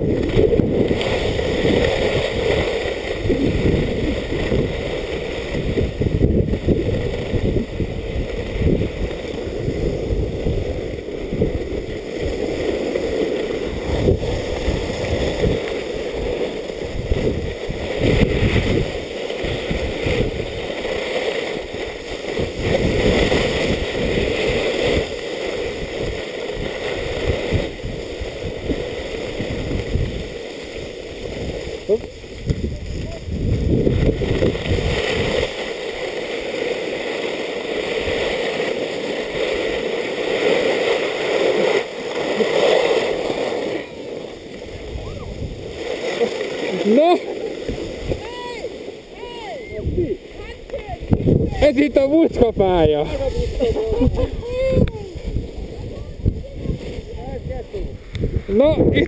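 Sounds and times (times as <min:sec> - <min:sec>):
wind buffeting microphone: 0:00.0 - 0:20.9, 0:21.6 - 0:35.8, 0:43.0 - 0:59.0
skis scraping over snow: 0:00.0 - 0:59.0.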